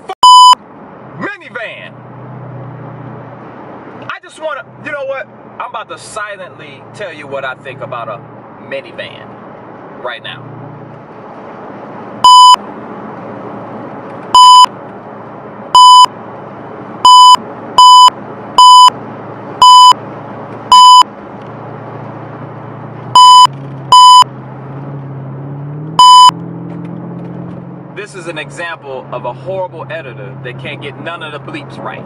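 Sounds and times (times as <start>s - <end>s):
car cabin road noise: 0.0s - 32.0s
censor bleeps: 0.2s - 0.6s, 12.2s - 12.6s, 14.3s - 14.7s, 15.7s - 16.1s, 17.0s - 19.0s, 19.6s - 20.0s, 20.7s - 21.1s, 23.1s - 24.3s, 26.0s - 26.4s.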